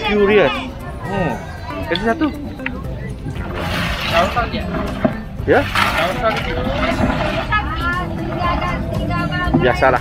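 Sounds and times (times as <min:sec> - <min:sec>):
steady low rumble: 0:02.4 - 0:10.0
people talking: 0:04.0 - 0:10.0.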